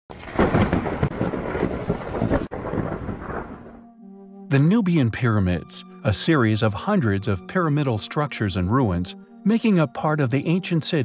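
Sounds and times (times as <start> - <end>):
loud crackling rumble: 0.1 - 3.9.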